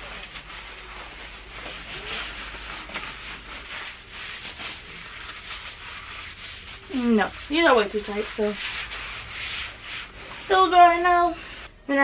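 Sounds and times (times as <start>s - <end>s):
nylon pants rustling: 0.0s - 11.7s.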